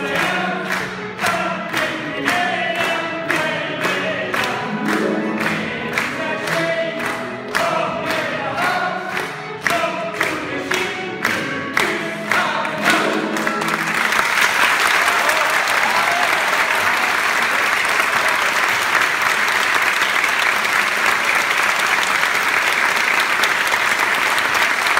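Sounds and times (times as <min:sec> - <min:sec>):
man singing with chamber ensemble: 0:00.0 - 0:13.6
audience applause: 0:00.0 - 0:24.9.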